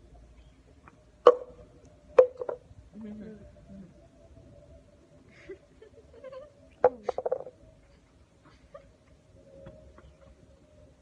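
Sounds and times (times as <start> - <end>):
girl giggling through closed lips: 2.9 - 4.0.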